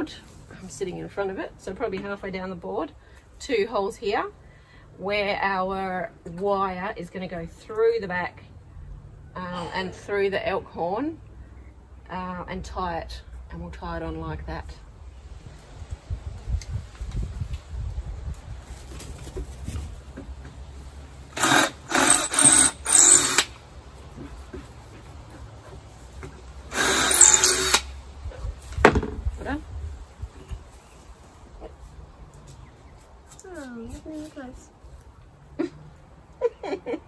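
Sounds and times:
drill boring through wood: 21.3 - 23.5, 26.7 - 27.9.

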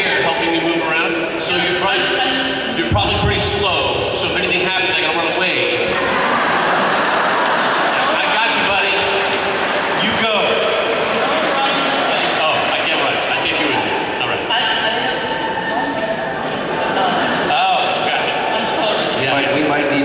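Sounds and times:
crowd noise in a large hall: 0.0 - 20.0.

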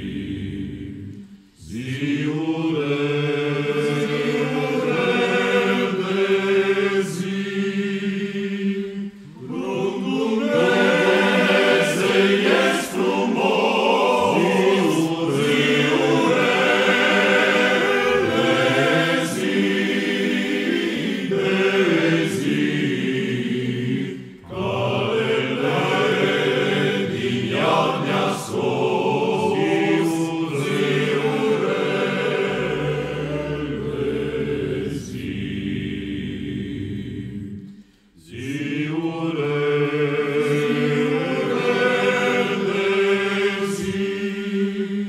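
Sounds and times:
male choir singing a cappella: 0.0 - 45.0.

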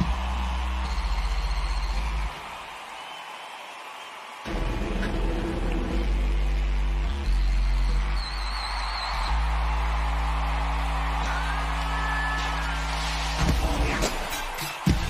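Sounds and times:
stadium crowd cheering and screaming: 0.0 - 15.0.

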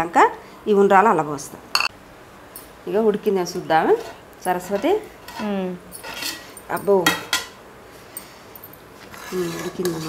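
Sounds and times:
woman speaking: 2.9 - 5.9, 6.7 - 7.2, 9.3 - 10.0.

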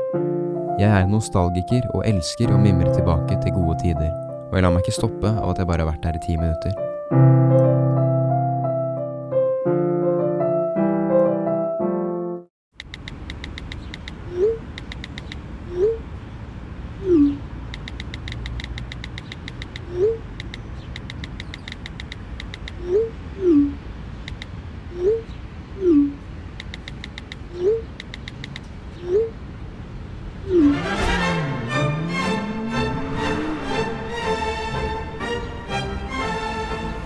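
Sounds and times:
phone keyboard clicks: 12.8 - 15.4, 17.7 - 22.9, 26.6 - 28.8.

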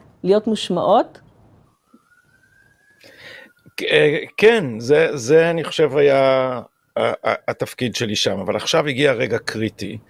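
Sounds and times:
faint rising tone: 1.2 - 7.4.

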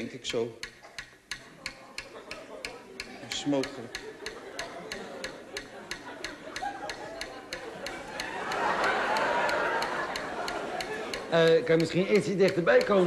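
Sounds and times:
timer ticking: 0.0 - 13.0.

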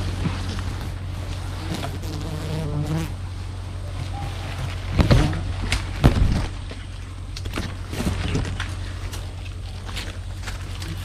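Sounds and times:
steady low hum: 0.0 - 11.0
flying insect buzzing: 1.6 - 3.2
leaves and twigs rustling: 3.2 - 11.0.

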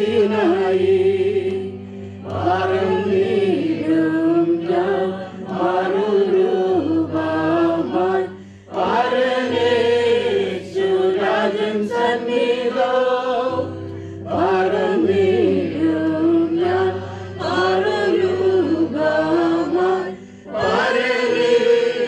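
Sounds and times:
group chanting a hymn: 0.0 - 22.0.

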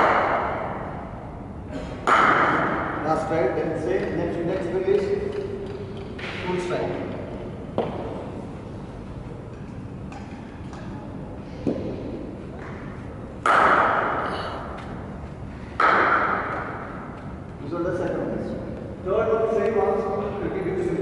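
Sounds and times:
cricket bat striking ball: 0.0 - 1.1, 2.0 - 3.0, 13.4 - 14.2, 15.8 - 17.0.

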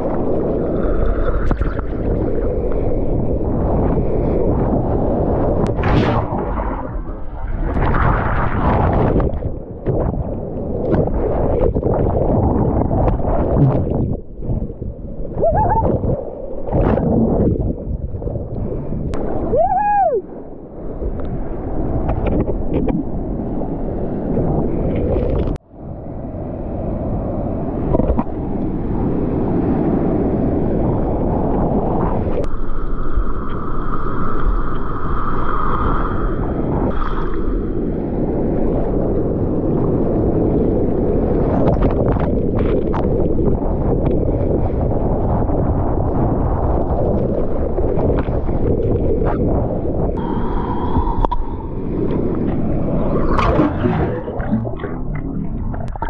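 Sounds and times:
seawater sloshing and churning: 0.0 - 19.5, 27.8 - 56.0
muffled underwater gurgling: 0.0 - 20.3, 40.6 - 56.0
wind buffeting microphone: 0.0 - 56.0.

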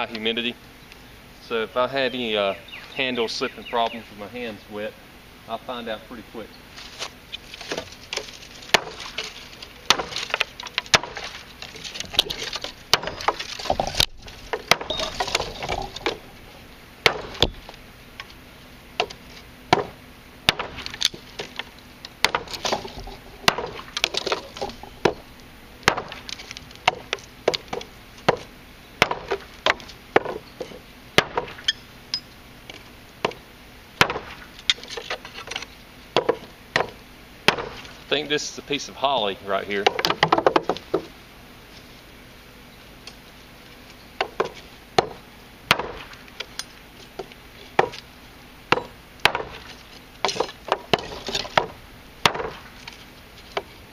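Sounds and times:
knife chopping dry branches: 6.8 - 16.2, 17.0 - 17.7, 19.0 - 30.4, 31.2 - 31.7, 34.0 - 35.6, 36.2 - 38.0, 44.2 - 46.5, 48.7 - 53.7.

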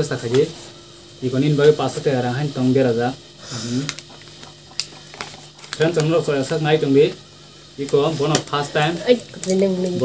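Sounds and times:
person talking: 7.8 - 10.0.

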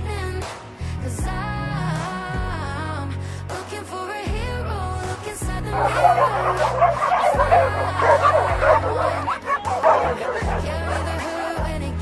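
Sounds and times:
many dogs barking and yipping: 5.7 - 12.0.

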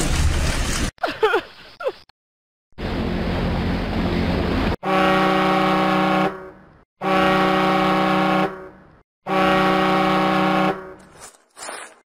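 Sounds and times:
ship's horn blasts: 4.8 - 11.1.

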